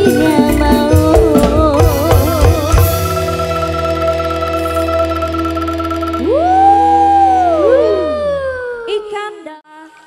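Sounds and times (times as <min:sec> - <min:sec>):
sustained keyboard chord: 0:02.9 - 0:07.4
sliding synthesizer tones: 0:03.0 - 0:09.3.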